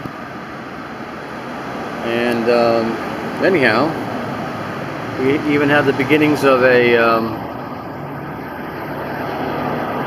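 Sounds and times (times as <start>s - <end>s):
van passing on street: 0.0s - 10.0s.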